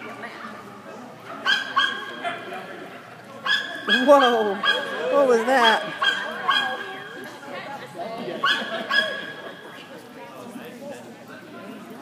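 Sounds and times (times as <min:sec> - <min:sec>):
dog barking: 0:01.3 - 0:02.5, 0:03.4 - 0:05.0, 0:05.6 - 0:06.9, 0:08.4 - 0:09.4.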